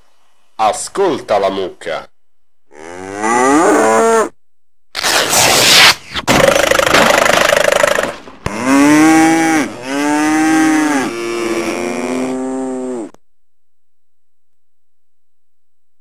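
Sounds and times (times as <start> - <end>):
cow mooing: 2.7 - 4.3, 8.5 - 13.2.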